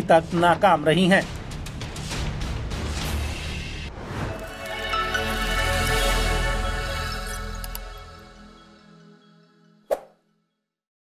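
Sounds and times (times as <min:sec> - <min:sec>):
background music low notes: 0:00.0 - 0:10.6.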